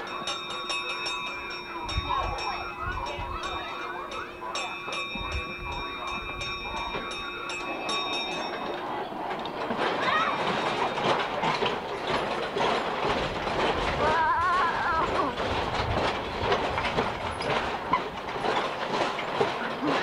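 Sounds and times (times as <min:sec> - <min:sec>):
regular ticking: 0:00.0 - 0:20.0
ride cars rattling rumble: 0:00.0 - 0:20.0
ride machinery humming: 0:00.0 - 0:20.0.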